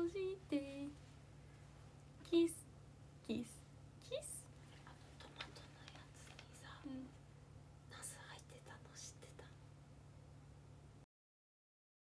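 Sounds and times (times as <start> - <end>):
low electrical hum: 0.0 - 11.1
person whispering: 3.3 - 7.2, 7.9 - 9.6.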